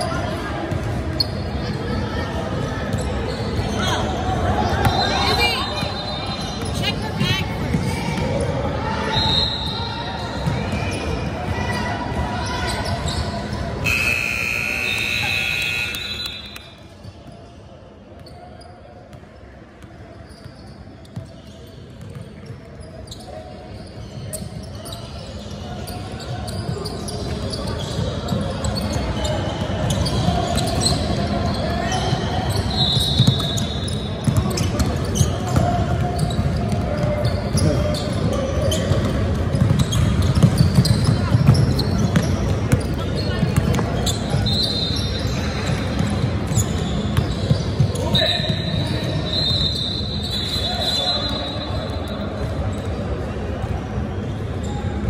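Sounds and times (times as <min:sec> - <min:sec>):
voices: 0:01.7 - 0:16.8
sneakers squeaking on hardwood: 0:12.4 - 0:16.6, 0:31.9 - 0:52.0.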